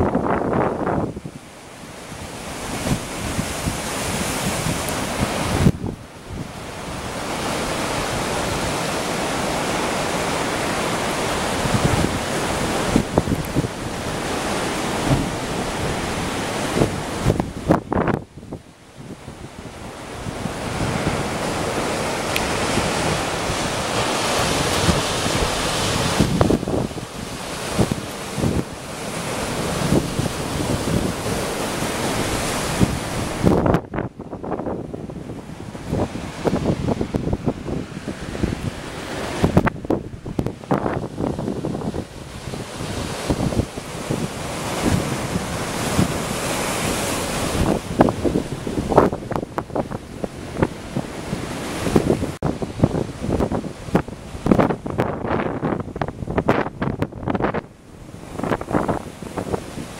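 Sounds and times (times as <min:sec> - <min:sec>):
surf breaking over rocks: 0:00.0 - 0:59.9
wind buffeting microphone: 0:00.0 - 0:59.9.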